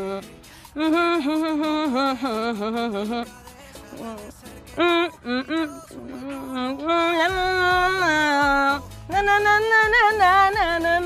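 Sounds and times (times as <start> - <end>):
person singing: 0.0 - 11.0.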